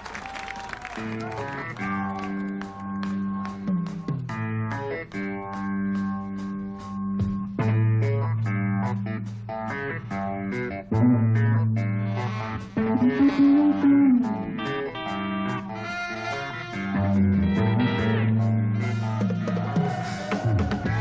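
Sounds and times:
rock band playing live: 0:01.0 - 0:21.0.

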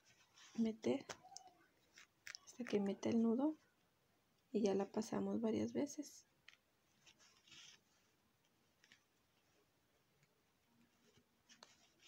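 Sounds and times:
yarn rustling: 0:00.0 - 0:02.8, 0:06.8 - 0:12.0.

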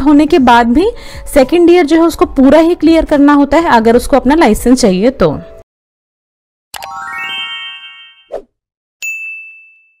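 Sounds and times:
rising chime tones: 0:06.8 - 0:08.3
bell-like notification ding: 0:09.0 - 0:10.0.

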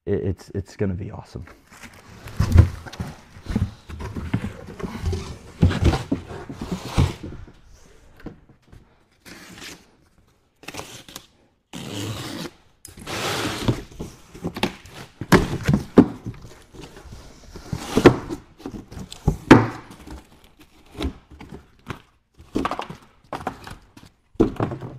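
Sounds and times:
cardboard tearing and scraping: 0:01.8 - 0:07.5, 0:10.6 - 0:21.9.

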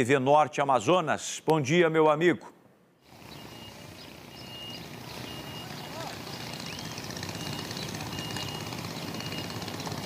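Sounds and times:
outdoor ambient hiss: 0:00.0 - 0:10.0.

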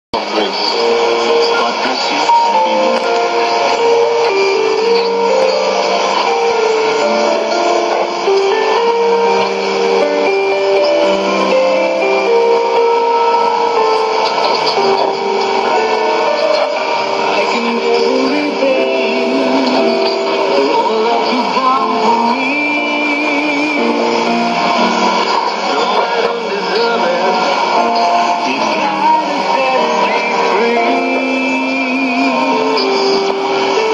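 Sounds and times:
radio music of held notes: 0:00.2 - 0:33.9
radio reception hiss: 0:00.2 - 0:33.9.

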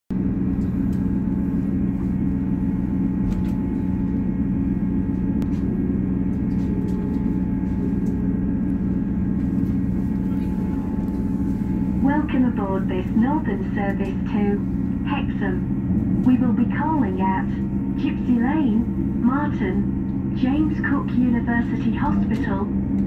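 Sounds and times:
train diesel engine idling: 0:00.1 - 0:23.0.

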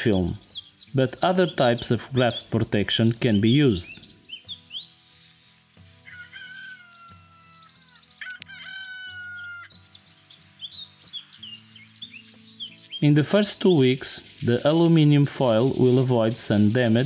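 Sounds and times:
small birds chirping: 0:00.0 - 0:17.0
soft background music: 0:00.0 - 0:17.0
rooster crowing: 0:06.0 - 0:09.8.

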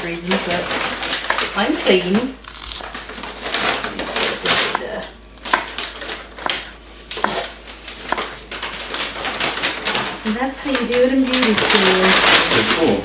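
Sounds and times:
knife chopping on wooden board: 0:04.5 - 0:07.5, 0:08.1 - 0:08.4.

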